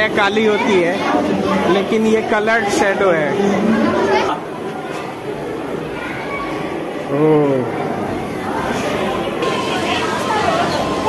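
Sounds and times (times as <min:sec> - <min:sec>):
people talking overlapping: 0:00.0 - 0:11.0.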